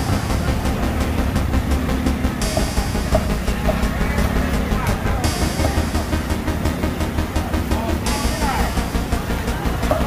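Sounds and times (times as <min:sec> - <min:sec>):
faint crowd voices: 0:00.0 - 0:10.0
steady low rumble: 0:00.0 - 0:10.0.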